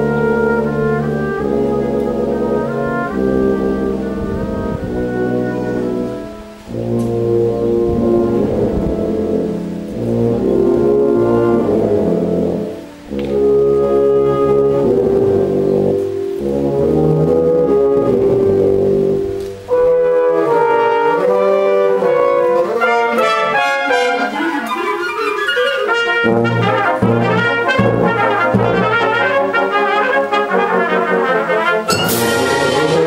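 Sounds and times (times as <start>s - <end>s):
wind band playing: 0.0s - 33.0s.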